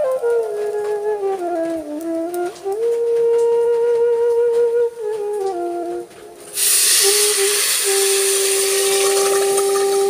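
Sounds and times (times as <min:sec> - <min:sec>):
hissing and sizzling: 0:06.3 - 0:10.0
water pouring: 0:06.5 - 0:10.0.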